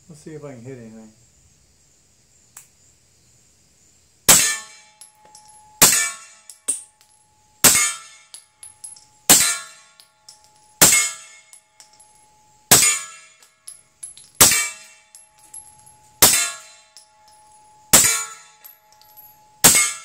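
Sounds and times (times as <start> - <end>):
metallic ring: 4.3 - 20.0.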